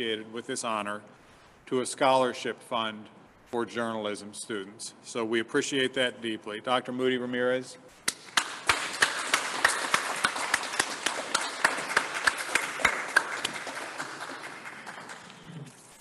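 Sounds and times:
close hand claps: 0:08.0 - 0:15.8
applause: 0:08.1 - 0:15.8.

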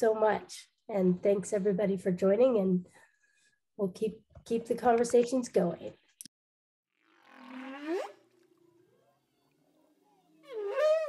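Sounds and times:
whale calls: 0:07.0 - 0:09.6, 0:10.4 - 0:11.0.

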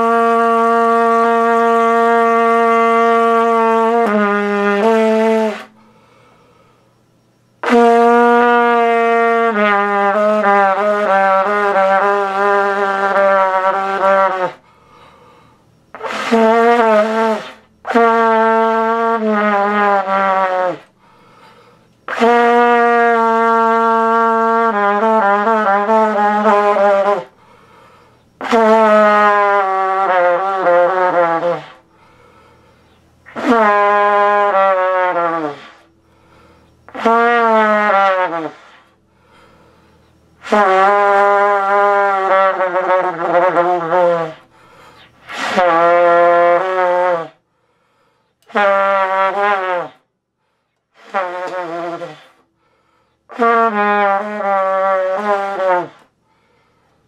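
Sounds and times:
trumpet low held notes: 0:00.0 - 0:05.9, 0:07.6 - 0:14.6, 0:15.9 - 0:21.0, 0:22.1 - 0:27.4, 0:28.4 - 0:31.9, 0:33.2 - 0:39.0, 0:40.4 - 0:44.5, 0:45.2 - 0:47.4, 0:48.4 - 0:50.0, 0:50.9 - 0:52.5, 0:53.3 - 0:56.1.

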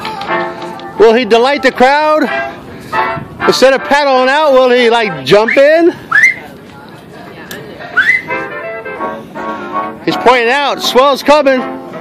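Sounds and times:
person whistling upward: 0:05.4 - 0:06.4, 0:08.0 - 0:08.4.

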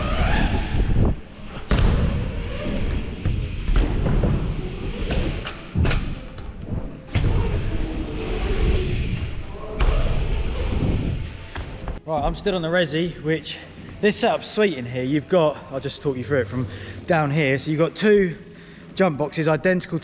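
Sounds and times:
bike tyres rumbling on wood: 0:00.0 - 0:12.0.

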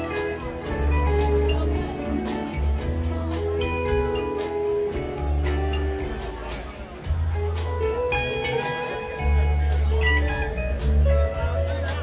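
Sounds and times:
drums and cymbals: 0:00.0 - 0:12.0
electric guitar melody: 0:00.0 - 0:12.0
held bass notes: 0:00.0 - 0:12.0.

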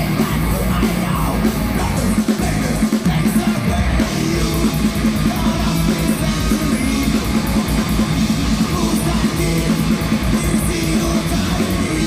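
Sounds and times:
distorted electric guitars: 0:00.0 - 0:12.0
fast drums: 0:00.0 - 0:12.0
live heavy metal band: 0:00.0 - 0:12.0.

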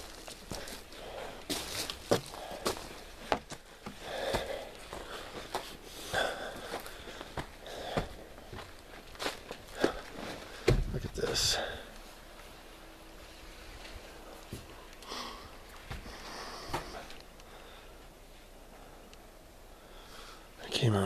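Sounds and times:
footsteps on wooden deck: 0:00.0 - 0:11.7.

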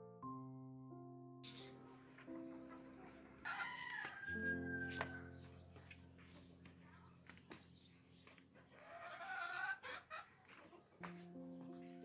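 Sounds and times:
chicken calling: 0:02.7 - 0:05.5, 0:08.6 - 0:11.0.

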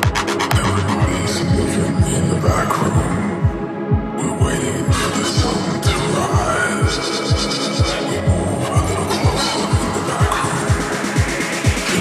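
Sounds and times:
steady kick drum: 0:00.0 - 0:06.0, 0:06.8 - 0:12.0
electronic dance music: 0:00.0 - 0:12.0.

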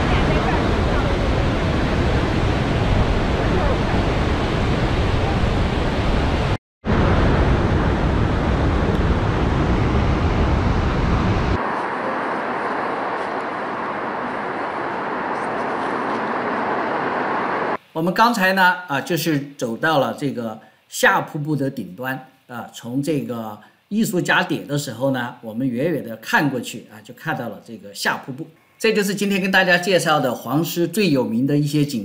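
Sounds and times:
waterfall rushing and rumbling: 0:00.0 - 0:17.8.

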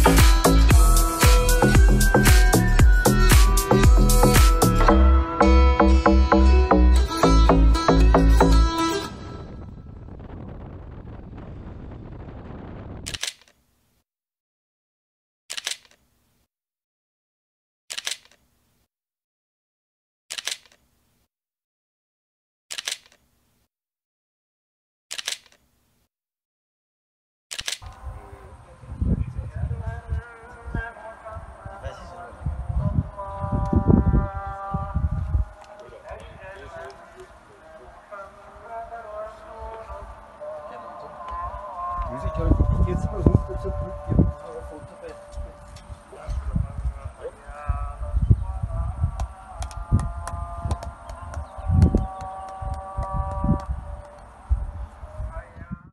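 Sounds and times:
wind rumbling on microphone: 0:09.0 - 0:13.2, 0:27.8 - 0:40.4, 0:41.2 - 0:55.9
sharp clicks: 0:13.0 - 0:13.6, 0:15.5 - 0:16.1, 0:17.9 - 0:18.5, 0:20.3 - 0:20.9, 0:22.7 - 0:23.2, 0:25.1 - 0:25.7, 0:27.5 - 0:28.0
outdoor background noise: 0:27.5 - 0:55.8
man singing call to prayer: 0:27.9 - 0:54.1.

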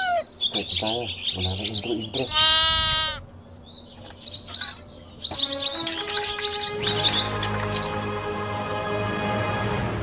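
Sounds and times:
high bird chirps: 0:00.3 - 0:08.0.

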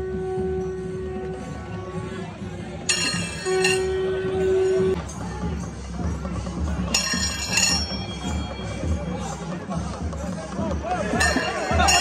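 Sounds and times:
wind instrument steady note: 0:00.0 - 0:05.0
crowd: 0:00.0 - 0:12.0
drums rumbling: 0:00.0 - 0:12.0.

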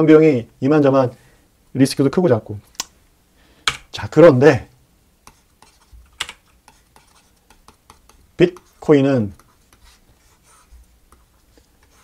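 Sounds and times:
sharp clicks and taps at desk: 0:03.7 - 0:03.9, 0:05.2 - 0:08.7.

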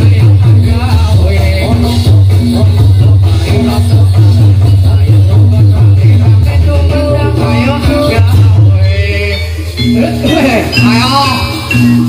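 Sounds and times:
gamelan music: 0:00.0 - 0:12.0
person singing: 0:00.0 - 0:12.0.

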